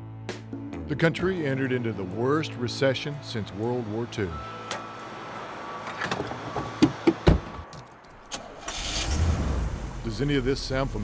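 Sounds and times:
car engine starting: 8.1 - 11.0.

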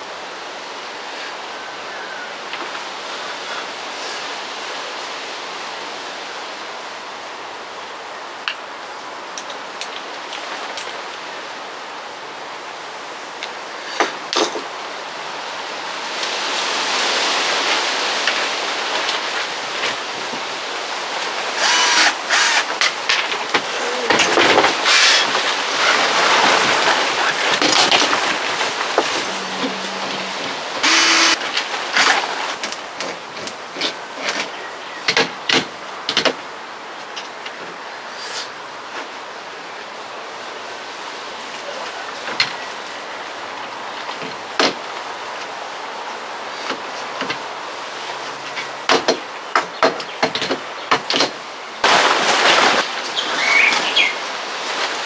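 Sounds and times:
outdoor hiss: 0.0 - 55.0
cordless drill bursts: 21.6 - 22.7, 24.9 - 25.3, 30.8 - 31.4.

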